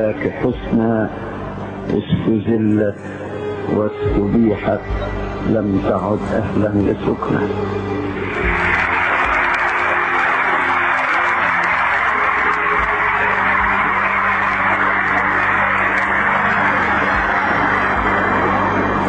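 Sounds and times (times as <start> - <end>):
low background music: 0.0 - 19.0
audience applauding: 8.1 - 19.0.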